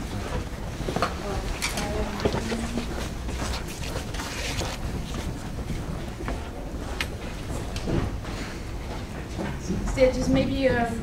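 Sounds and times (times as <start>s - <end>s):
rustling and shuffling: 0.0s - 10.9s.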